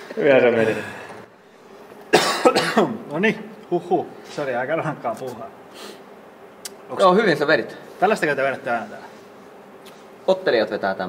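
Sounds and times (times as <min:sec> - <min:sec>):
man coughing hard: 0:02.1 - 0:03.0.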